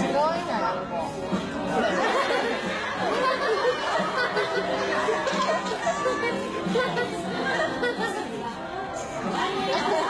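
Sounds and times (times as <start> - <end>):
people chattering: 0.0 - 10.0.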